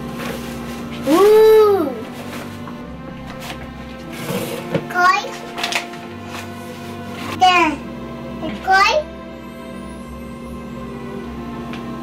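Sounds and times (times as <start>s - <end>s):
paper bag and packet rustling: 0.0s - 7.4s
child's voice: 1.1s - 2.1s, 4.9s - 5.4s, 7.3s - 7.8s, 8.4s - 9.1s.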